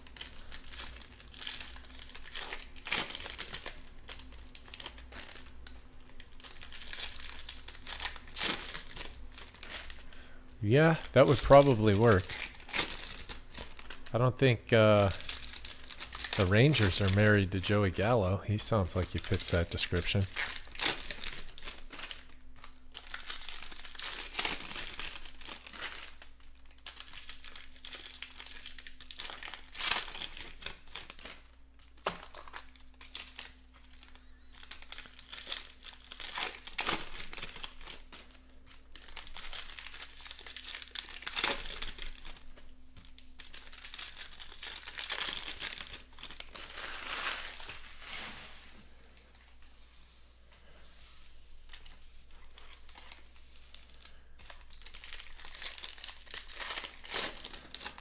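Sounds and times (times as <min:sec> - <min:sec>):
foil wrappers crinkling and tearing: 0:00.0 - 0:49.6, 0:51.4 - 0:58.0.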